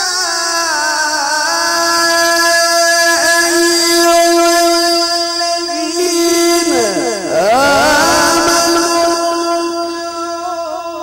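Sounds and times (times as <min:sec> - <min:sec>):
man reciting melodically: 0:00.0 - 0:11.0.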